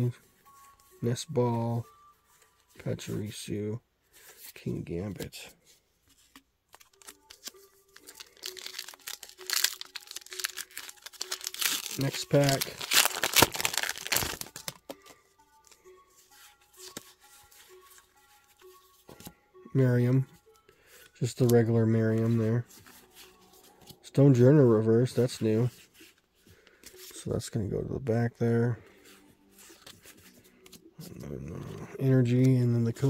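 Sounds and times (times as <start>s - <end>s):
soft handling of cards: 0.1s - 19.4s, 20.2s - 33.0s
cards rustling: 4.1s - 19.3s
foil wrapper tearing and crinkling: 6.9s - 14.9s.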